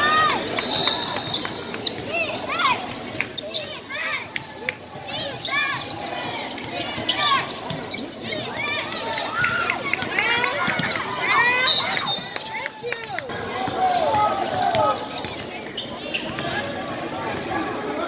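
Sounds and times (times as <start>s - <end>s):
sneaker squeaks: 0.0s - 9.5s, 10.5s - 12.6s, 13.5s - 18.0s
voices in hall: 0.0s - 18.0s.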